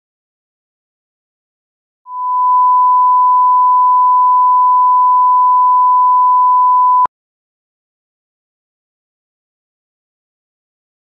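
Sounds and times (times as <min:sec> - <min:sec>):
pure test tone beep: 0:02.1 - 0:07.1.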